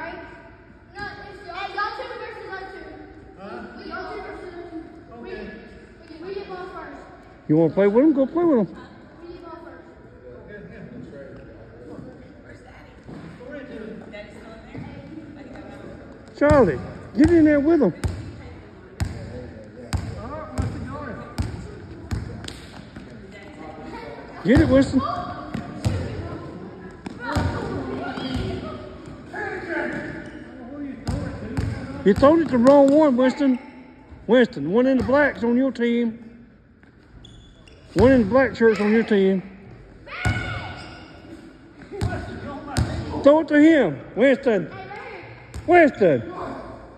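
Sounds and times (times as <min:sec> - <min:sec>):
basketball bouncing on gym floor: 0:16.3 - 0:18.4, 0:19.9 - 0:23.1, 0:24.6 - 0:26.3, 0:31.0 - 0:33.0.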